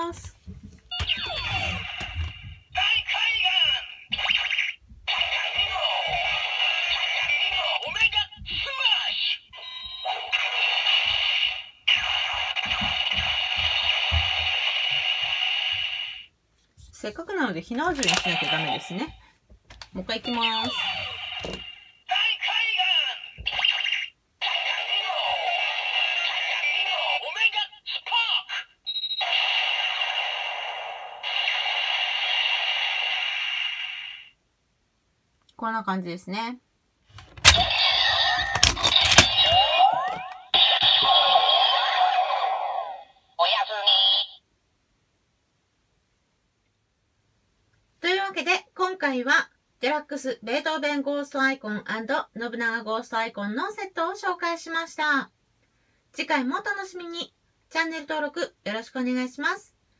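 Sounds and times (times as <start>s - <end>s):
toy speaker music: 0.9s - 13.8s, 37.4s - 44.4s
toy speaker electronic sound effects: 0.9s - 16.3s, 17.9s - 19.0s, 20.2s - 34.3s, 37.3s - 44.4s.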